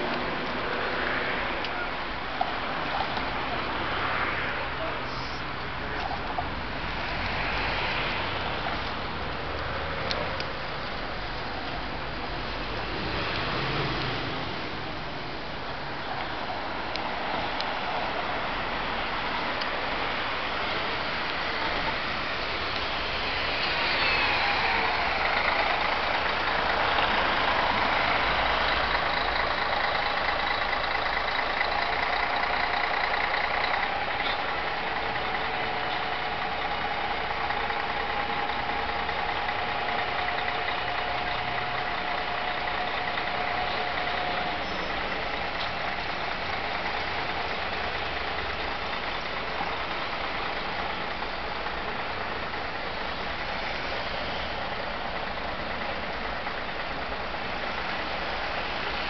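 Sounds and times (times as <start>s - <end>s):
car and bus engines idling: 0.0s - 59.0s
city bus passing close: 0.0s - 59.0s.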